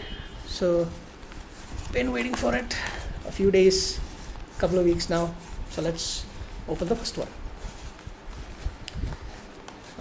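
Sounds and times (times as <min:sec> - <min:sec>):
packaging rustling: 0:00.4 - 0:10.0.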